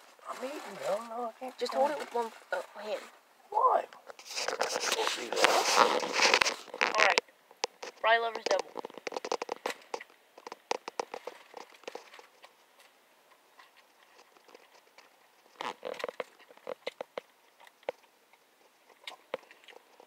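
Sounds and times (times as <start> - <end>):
chewing with mouth clicks: 8.7 - 20.0.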